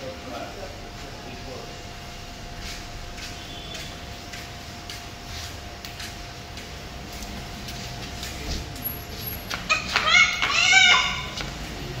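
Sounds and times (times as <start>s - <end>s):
young child squealing: 9.7s - 11.4s.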